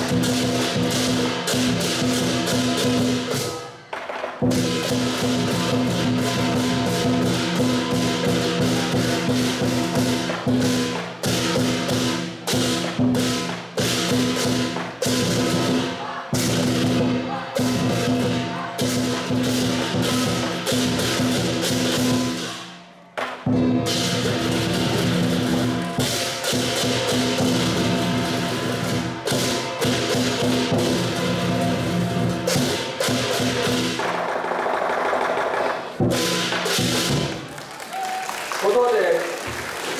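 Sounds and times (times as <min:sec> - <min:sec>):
cymbals crashing: 0:00.0 - 0:03.8, 0:04.4 - 0:37.5
drum beating: 0:00.0 - 0:39.9.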